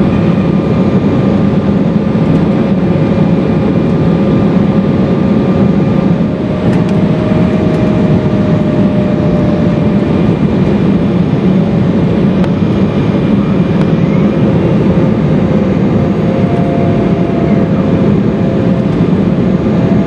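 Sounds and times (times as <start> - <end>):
airplane cabin engine roar: 0.0 - 20.0
faint engine whine: 0.0 - 20.0.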